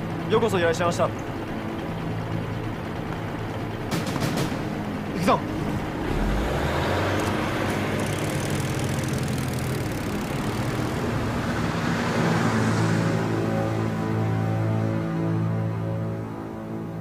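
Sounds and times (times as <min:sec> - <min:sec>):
truck engine running: 0:00.0 - 0:14.8.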